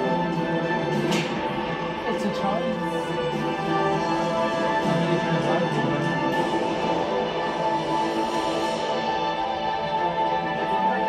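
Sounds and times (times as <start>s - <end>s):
music with long held notes: 0.0s - 11.0s.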